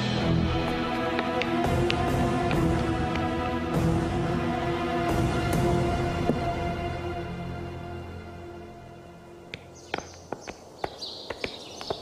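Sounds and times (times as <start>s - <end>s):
background music: 0.0s - 11.2s
footsteps on stone floor: 0.5s - 3.8s, 9.5s - 12.0s.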